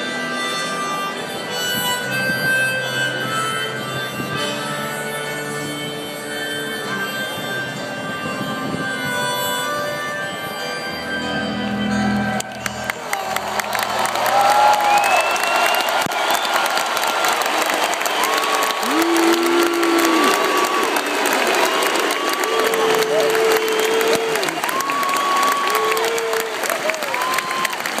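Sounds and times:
crowd applauding and cheering: 0:12.0 - 0:28.0
people giving long shouts: 0:13.1 - 0:28.0.

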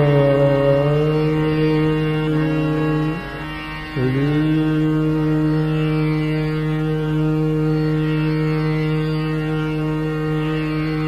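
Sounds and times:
man singing classical vocal: 0:00.0 - 0:11.0
tanpura drone: 0:00.0 - 0:11.0.

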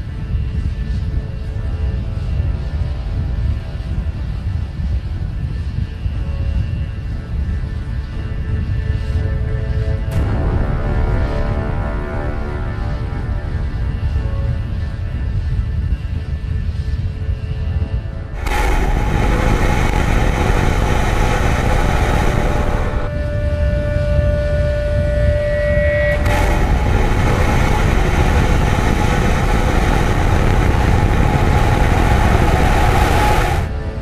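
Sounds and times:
background music: 0:07.0 - 0:34.0
rocket engines roaring: 0:10.1 - 0:16.0, 0:18.3 - 0:25.4, 0:26.0 - 0:34.0.

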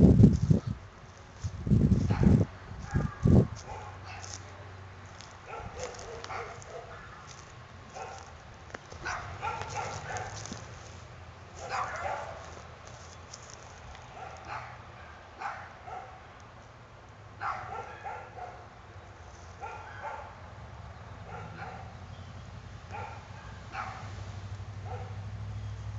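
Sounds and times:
dog barking: 0:02.0 - 0:04.5, 0:05.4 - 0:07.3, 0:07.9 - 0:08.3, 0:09.0 - 0:10.6, 0:11.6 - 0:12.6, 0:14.2 - 0:16.2, 0:17.4 - 0:18.7, 0:19.6 - 0:20.4, 0:21.2 - 0:22.0, 0:22.9 - 0:24.1, 0:24.8 - 0:25.2.

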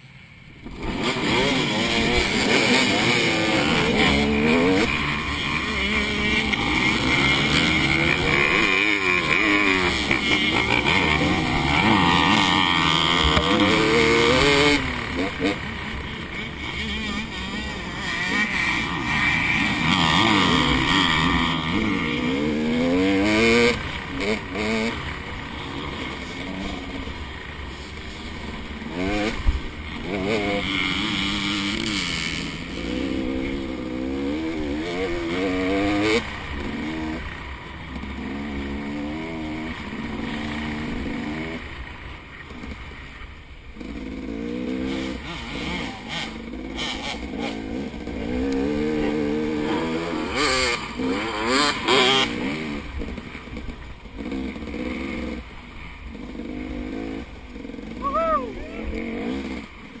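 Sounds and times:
dirt bike engine revving: 0:00.6 - 1:00.0.

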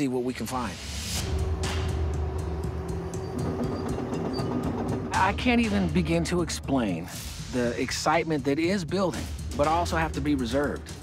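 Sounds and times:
engine low rumble: 0:01.2 - 0:08.2
tracks clicking: 0:01.4 - 0:07.9.

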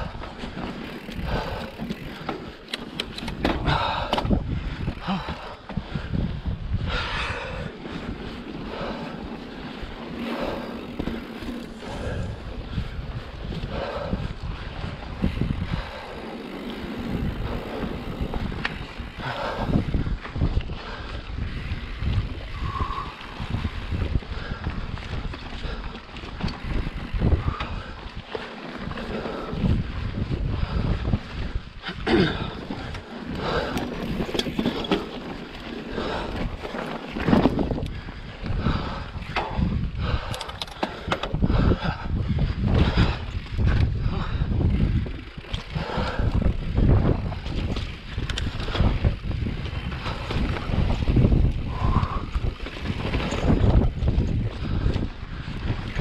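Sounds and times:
wind buffeting microphone: 0:00.0 - 0:56.0
bike clattering on rock: 0:00.1 - 0:04.9, 0:32.2 - 0:37.9.

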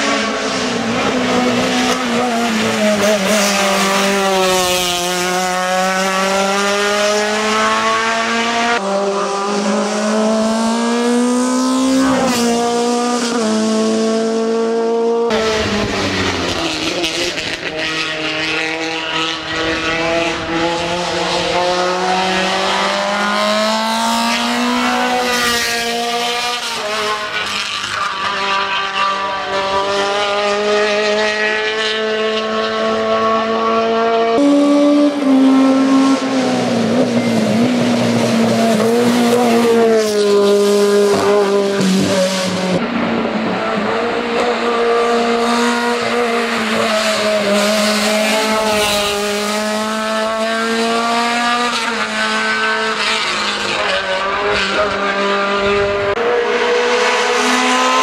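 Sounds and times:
rally car engine at full throttle: 0:00.0 - 0:58.0.

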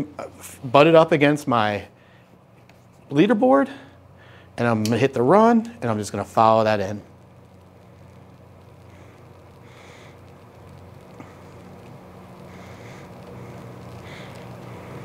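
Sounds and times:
laminator rollers humming: 0:07.5 - 0:15.0.

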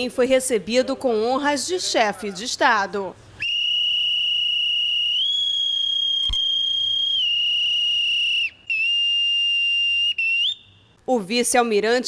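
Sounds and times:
boatswain's pipe whistling: 0:03.4 - 0:10.8.

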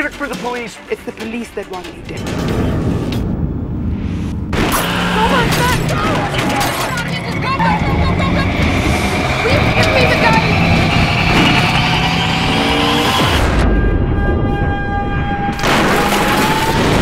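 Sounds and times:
dramatic music: 0:00.0 - 0:17.0
car chase sound effects: 0:04.1 - 0:14.4.

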